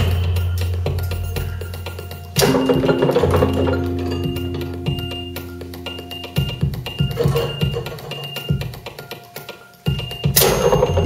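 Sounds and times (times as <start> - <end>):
low steady hum: 0.0 - 8.7.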